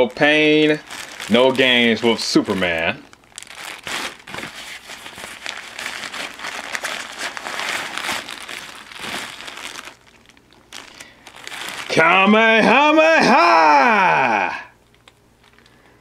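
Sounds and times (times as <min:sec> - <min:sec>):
plastic packaging crinkling: 0:00.0 - 0:12.9, 0:14.8 - 0:16.0.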